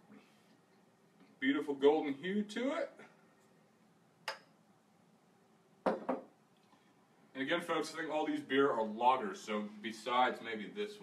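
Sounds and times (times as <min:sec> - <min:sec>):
glass bottle knocking on wooden table: 0:05.8 - 0:06.3.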